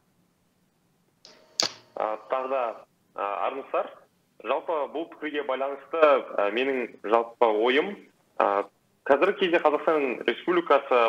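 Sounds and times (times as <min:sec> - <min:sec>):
audio line hiss: 0:00.0 - 0:11.0
sharp click: 0:01.3 - 0:01.9
person talking over call: 0:02.0 - 0:11.0.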